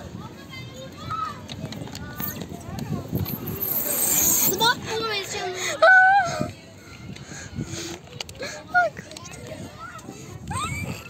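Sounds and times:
children's voices: 0.0s - 11.0s
hissing noise: 3.2s - 4.7s.

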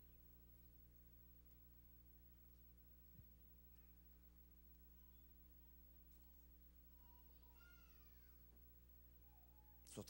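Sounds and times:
steady low hum: 0.0s - 10.0s
faint high-pitched wavering cry: 4.9s - 5.4s, 6.8s - 10.0s.

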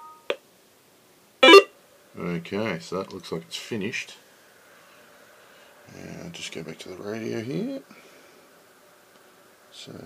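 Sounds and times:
two steady electronic tones: 1.4s - 1.7s.

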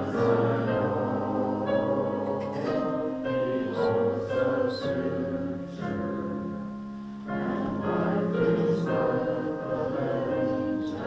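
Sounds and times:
congregation singing a hymn: 0.0s - 11.0s
piano accompaniment: 0.0s - 11.0s.

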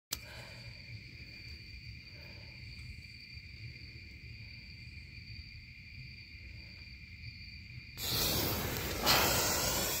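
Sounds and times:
gunpowder hissing and fizzing: 8.0s - 10.0s.

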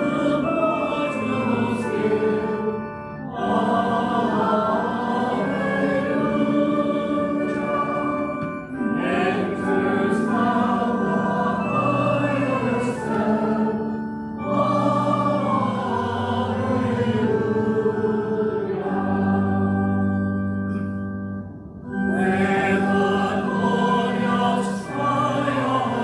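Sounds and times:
congregation singing a hymn: 0.0s - 26.0s
organ accompaniment: 0.0s - 26.0s.

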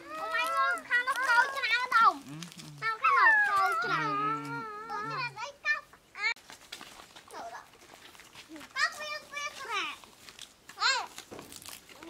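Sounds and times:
child calling high-pitched: 0.0s - 5.5s.

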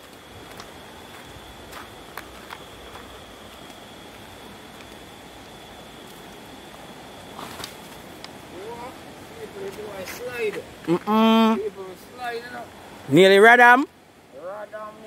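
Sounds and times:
thin high whine: 0.0s - 13.9s.

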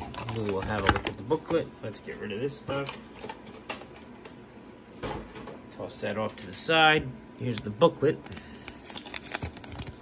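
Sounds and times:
toy packaging rustling: 8.2s - 10.0s.

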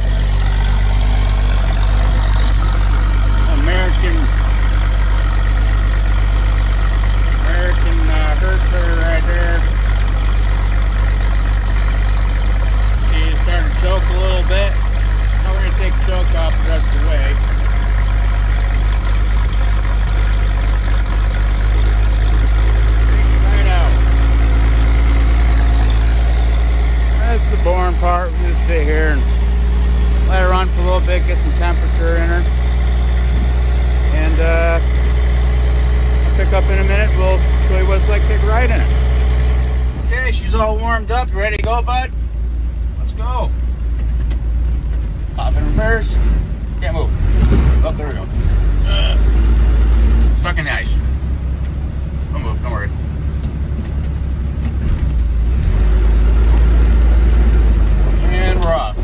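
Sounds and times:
truck engine idling: 0.0s - 59.0s.

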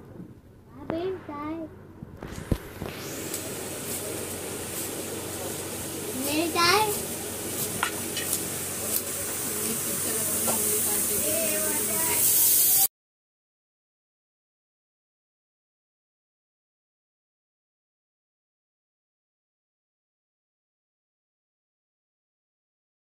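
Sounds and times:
child's voice: 0.7s - 1.7s, 6.1s - 7.0s, 11.2s - 12.3s
steady hiss: 0.7s - 12.9s.

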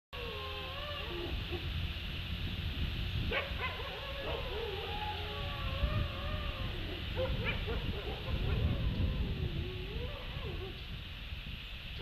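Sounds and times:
wolves howling: 0.2s - 1.8s, 3.3s - 10.9s.

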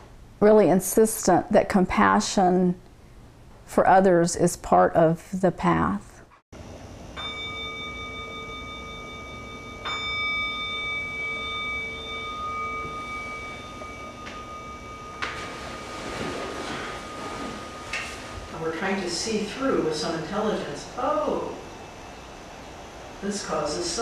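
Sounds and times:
singing bowl ringing: 6.6s - 22.6s
soft rustling: 12.6s - 19.0s.

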